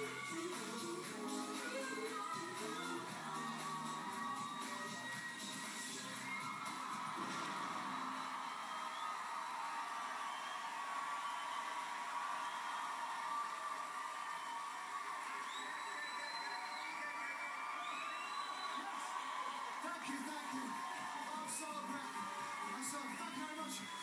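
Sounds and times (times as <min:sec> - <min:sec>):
audience cheering and whooping: 0:01.6 - 0:24.0
short rising whistles: 0:06.3 - 0:11.8, 0:15.4 - 0:19.0.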